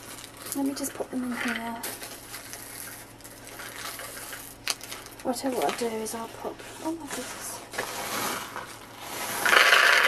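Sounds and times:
plastic packaging rustling: 0:00.0 - 0:10.0.

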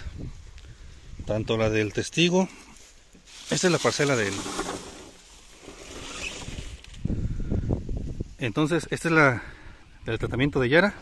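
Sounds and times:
dry stalks and leaves rustling: 0:00.0 - 0:08.5
footsteps in grass: 0:02.5 - 0:07.0.

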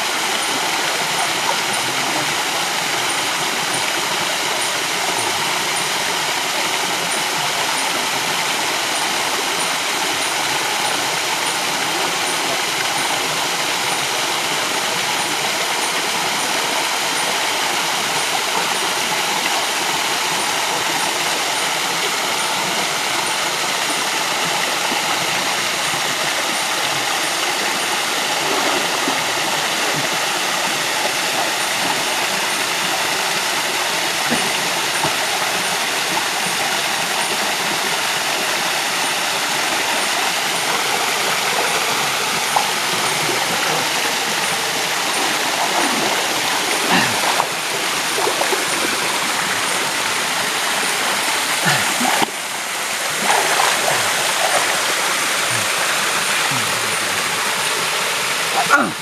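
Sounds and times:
river water rushing: 0:00.0 - 0:59.0.

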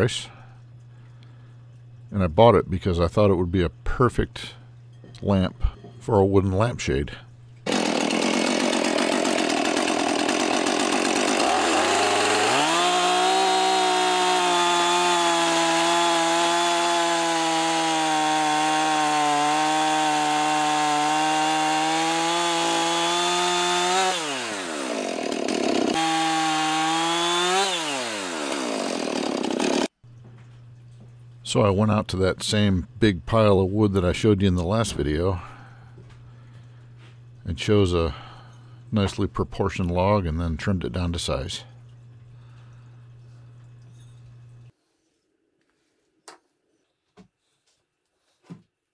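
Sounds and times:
chainsaw cutting log: 0:07.6 - 0:30.0.

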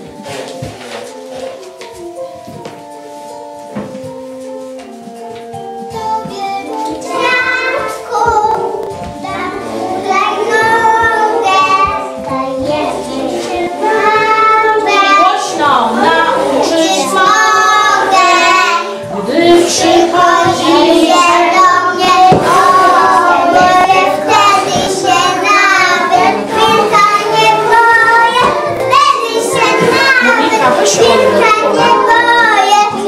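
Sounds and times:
children singing together: 0:05.9 - 0:33.0.

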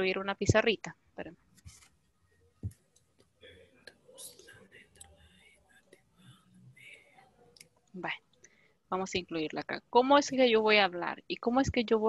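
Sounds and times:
low murmured speech: 0:03.4 - 0:07.6.

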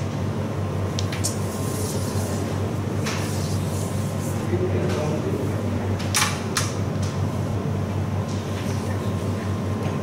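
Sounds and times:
low fan hum: 0:00.0 - 0:10.0.

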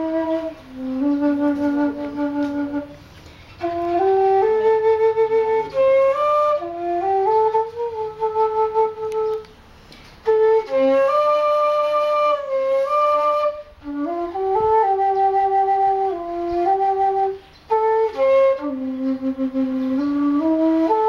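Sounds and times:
bamboo flute melody: 0:00.0 - 0:21.0.

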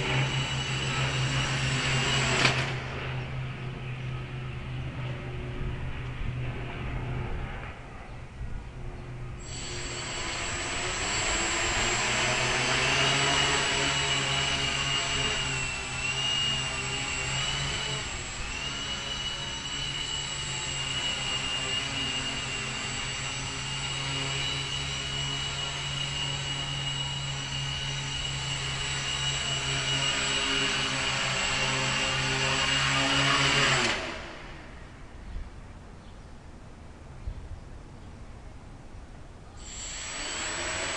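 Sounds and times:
multirotor motors buzzing whine: 0:00.0 - 0:35.1, 0:39.6 - 0:40.9.

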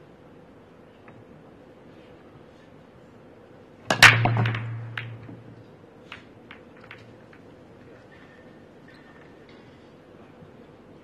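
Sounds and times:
balls smashing into rack: 0:03.9 - 0:07.2
cue striking ball: 0:03.9 - 0:07.4
billiard balls clicking: 0:03.9 - 0:07.6
balls rolling on cloth: 0:03.9 - 0:07.9.

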